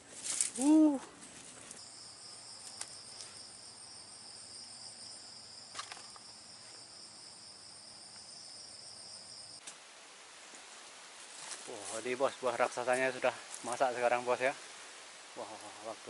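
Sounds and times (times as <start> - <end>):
high-pitched insect drone: 1.8 - 9.6.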